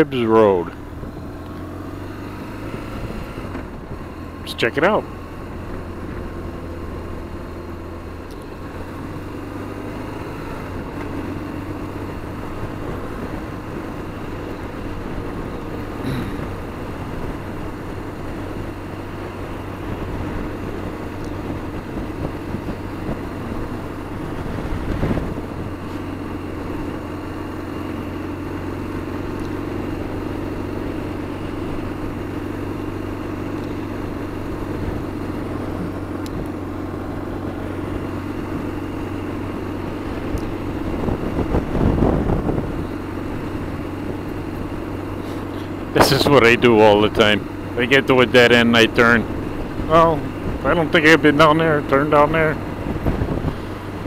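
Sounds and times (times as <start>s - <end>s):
motorcycle engine running: 0.0s - 54.0s
wind and road noise: 0.0s - 54.0s.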